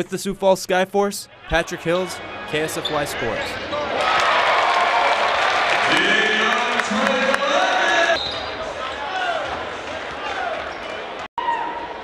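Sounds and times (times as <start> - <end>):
voices in an arena: 0.0 - 12.0.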